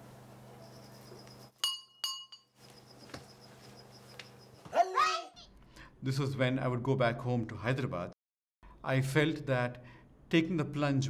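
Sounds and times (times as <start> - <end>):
bright ringing clinks: 0.6 - 2.6.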